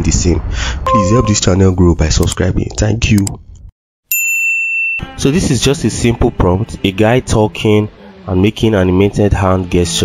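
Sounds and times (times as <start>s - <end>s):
notification bell ding: 0.9s - 1.5s.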